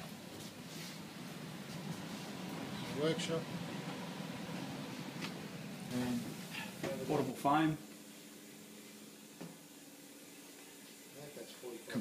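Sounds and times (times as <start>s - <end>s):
ship machinery hum: 0.0s - 10.4s.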